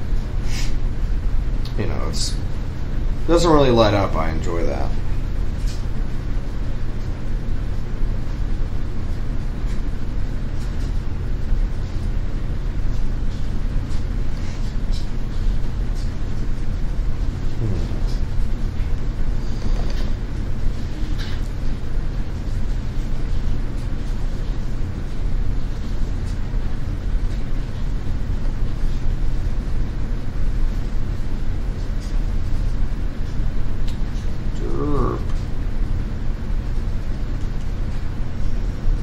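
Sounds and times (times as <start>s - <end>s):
low mechanical rumble: 0.0s - 39.0s.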